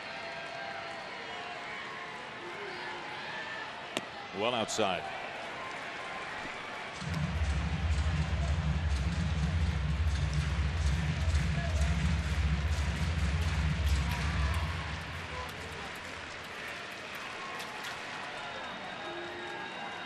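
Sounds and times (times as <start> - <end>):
ballpark crowd noise: 0.0 - 20.0
deep pulsing bass music: 7.0 - 15.7.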